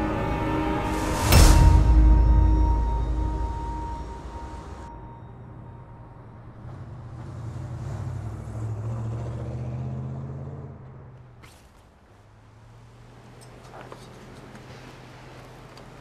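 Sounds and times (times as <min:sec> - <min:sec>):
music cue: 0:00.0 - 0:06.6
low vehicle rumble: 0:00.0 - 0:16.0
road traffic: 0:00.0 - 0:16.0.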